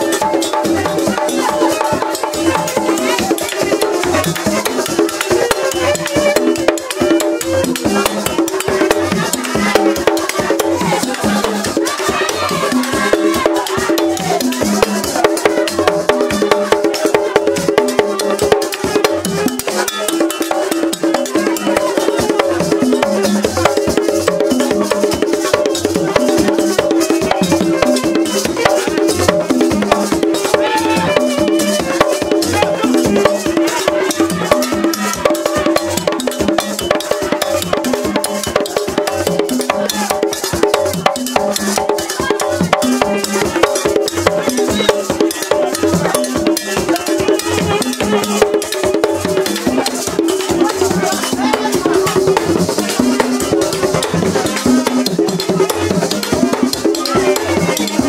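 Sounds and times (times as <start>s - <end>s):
group of voices singing: 0.0s - 58.0s
hand drums playing fast rhythm: 0.0s - 58.0s.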